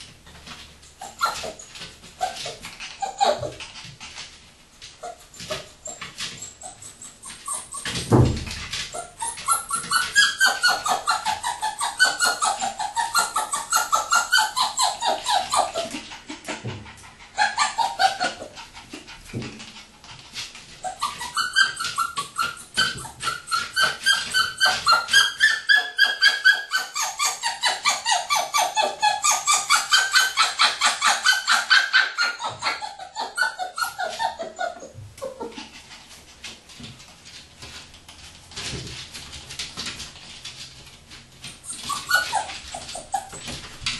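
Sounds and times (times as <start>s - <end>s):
puppy whimpering: 1.0s - 4.3s, 5.0s - 36.1s, 41.5s - 43.9s.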